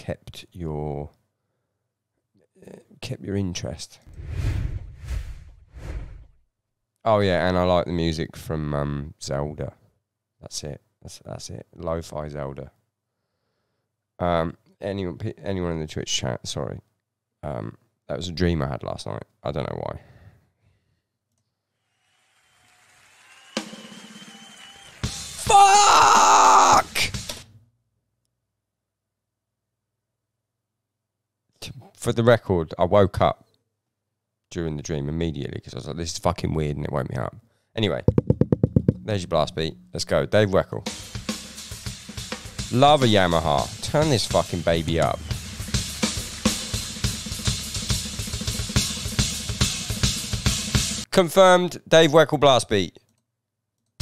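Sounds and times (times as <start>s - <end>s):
people talking: 2.6s - 4.0s, 7.1s - 9.7s, 39.0s - 40.9s, 42.8s - 45.2s
drum kit playing: 38.1s - 40.2s, 40.8s - 51.0s.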